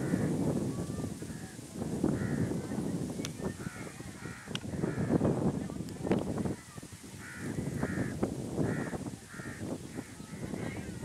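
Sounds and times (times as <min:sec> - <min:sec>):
crow cawing: 0:02.2 - 0:02.6, 0:03.6 - 0:05.2, 0:07.2 - 0:10.6.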